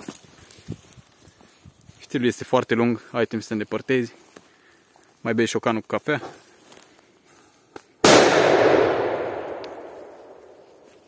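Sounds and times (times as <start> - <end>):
firecracker bang with echo: 8.0 - 10.6.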